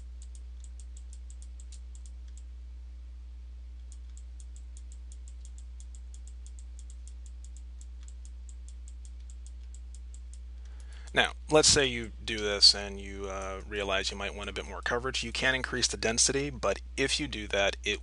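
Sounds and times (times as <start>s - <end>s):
computer mouse clicking rapidly: 0.0s - 2.5s, 3.8s - 11.2s
low electrical hum: 0.0s - 18.0s.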